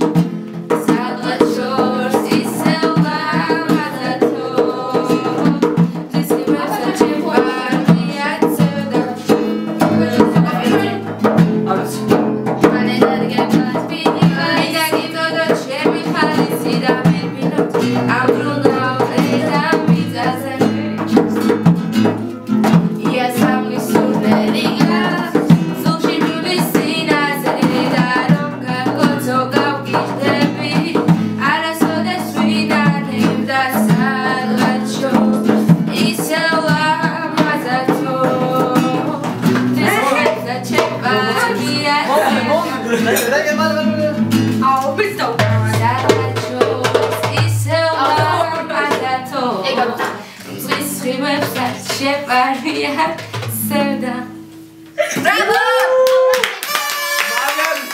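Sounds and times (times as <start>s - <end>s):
acoustic guitar playing: 0.0s - 56.0s
woman singing: 0.0s - 56.4s.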